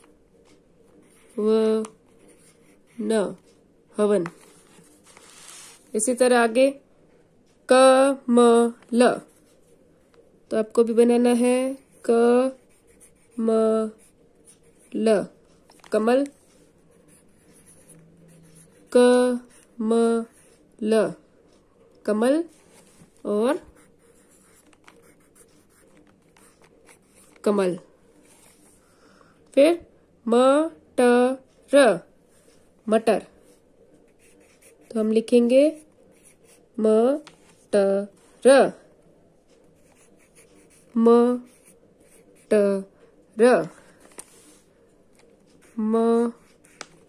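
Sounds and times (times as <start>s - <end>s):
pencil scratching on paper: 0.9s - 3.6s, 11.1s - 20.7s, 22.4s - 27.6s, 33.4s - 37.7s, 39.5s - 42.9s, 45.4s - 47.0s.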